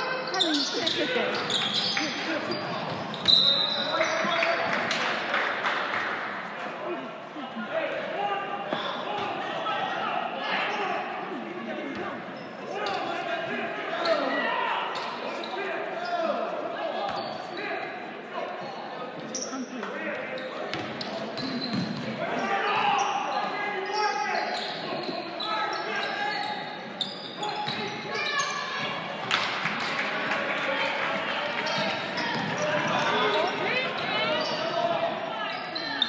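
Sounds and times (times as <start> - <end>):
voices calling out: 0.0 - 4.5.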